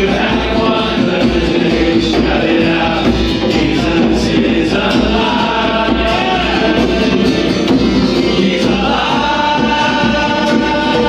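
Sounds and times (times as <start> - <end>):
live band with guitar: 0.0 - 11.0
men singing worship song: 0.0 - 11.0.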